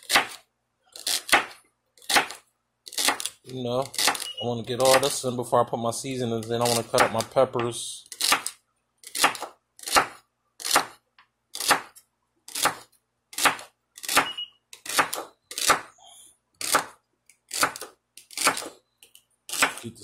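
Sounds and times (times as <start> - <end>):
knife chopping on wooden board: 0.0 - 0.4, 1.0 - 5.2, 6.5 - 11.0, 11.6 - 15.9, 16.6 - 18.8, 19.5 - 19.8.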